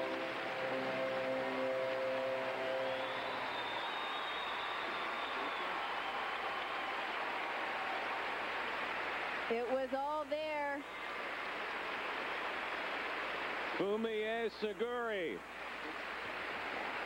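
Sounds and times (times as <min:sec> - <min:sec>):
orchestral string music: 0:00.0 - 0:03.1
long high whistle: 0:00.0 - 0:07.1
crowd applause and cheering: 0:00.0 - 0:09.7, 0:10.8 - 0:14.2, 0:15.4 - 0:17.0.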